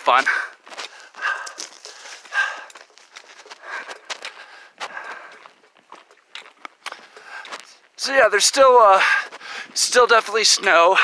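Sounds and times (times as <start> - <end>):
footsteps on a trail: 0.0 - 11.0
gear clicking and rustling: 0.3 - 8.0.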